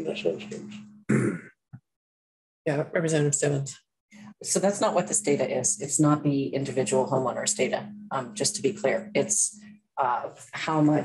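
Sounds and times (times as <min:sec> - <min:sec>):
person clearing throat: 0:01.1 - 0:01.5.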